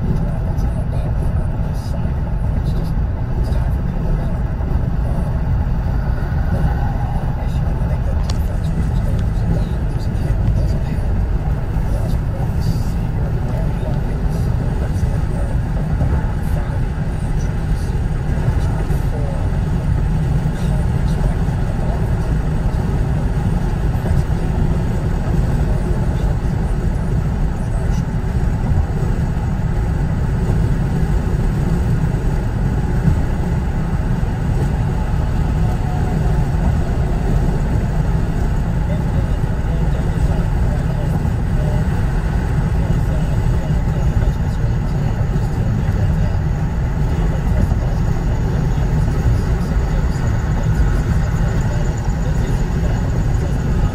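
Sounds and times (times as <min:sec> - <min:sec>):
car road and engine rumble: 0:00.0 - 0:53.9.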